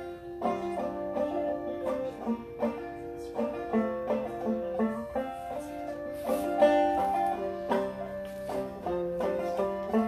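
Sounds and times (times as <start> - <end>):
banjo plucked: 0.0 - 10.0.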